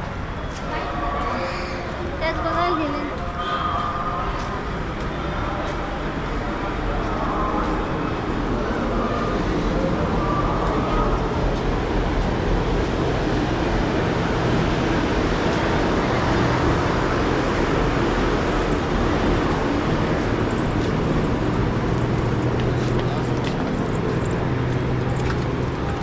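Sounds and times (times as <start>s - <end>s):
traffic noise: 0.0s - 26.0s
people talking: 0.6s - 12.2s.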